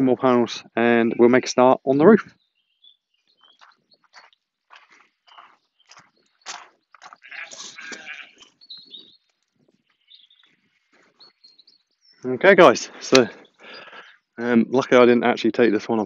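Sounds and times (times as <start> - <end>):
small birds chirping: 0.0 - 15.8
sheep bleating: 7.2 - 8.5.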